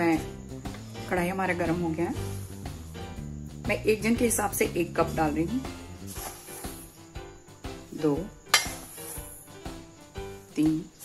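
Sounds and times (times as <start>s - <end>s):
background music: 0.0s - 11.0s
falling grains: 6.1s - 6.9s.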